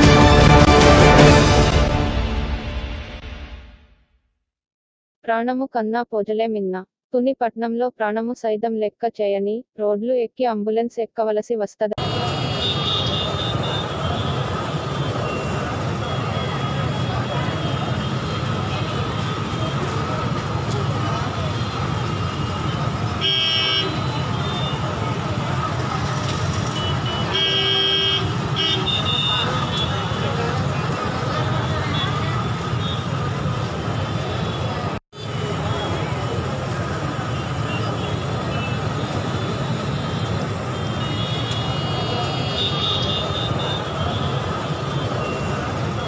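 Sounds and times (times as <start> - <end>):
vehicle horns: 12.0 - 25.4, 26.0 - 46.0
crowd voices: 12.0 - 46.0
slow traffic: 12.0 - 46.0.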